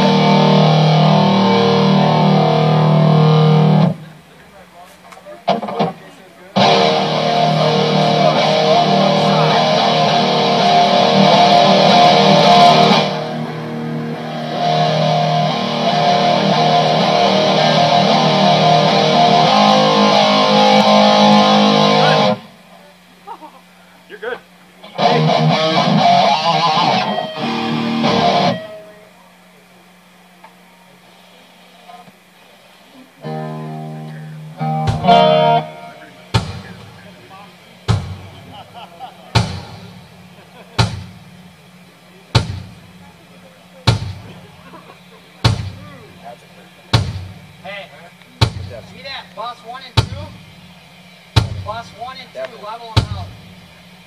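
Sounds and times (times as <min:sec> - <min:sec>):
distorted electric guitars: 0:00.0 - 0:04.4, 0:05.3 - 0:23.0, 0:24.5 - 0:29.2, 0:33.2 - 0:46.4
steady low hum: 0:00.0 - 0:54.0.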